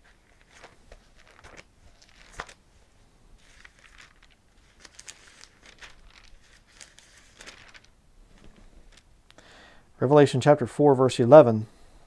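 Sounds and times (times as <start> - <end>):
thin pages being turned: 0.0 - 9.1.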